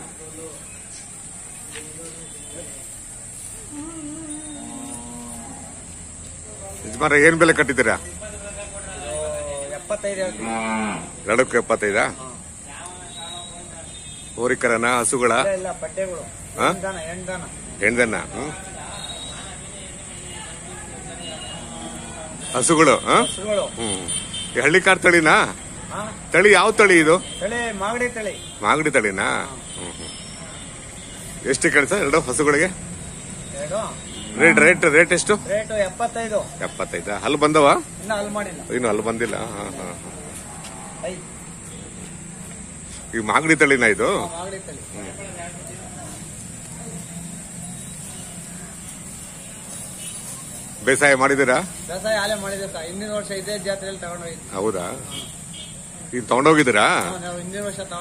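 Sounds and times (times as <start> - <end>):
faint high hiss: 0.0 - 58.0
cattle mooing: 3.7 - 5.9, 10.3 - 11.2, 34.2 - 35.1.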